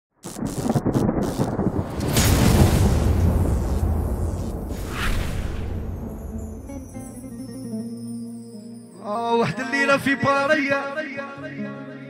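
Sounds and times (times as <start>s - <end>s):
thunder rumbling: 0.2s - 7.0s
rain hiss: 0.3s - 6.4s.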